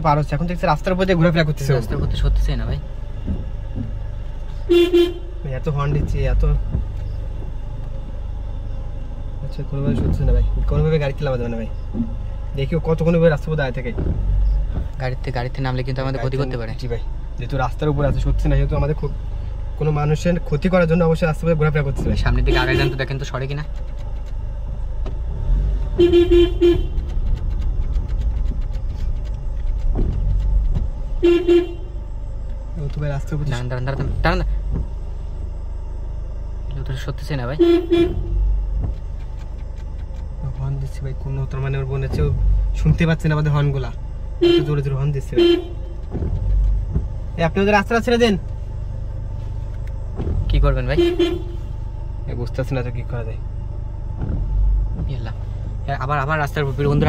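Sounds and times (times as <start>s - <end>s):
car driving rumble: 0.0s - 57.0s
car horn: 4.5s - 5.7s, 21.6s - 23.9s, 25.2s - 27.8s, 30.2s - 32.3s, 37.3s - 38.8s, 43.6s - 47.6s, 50.5s - 52.0s.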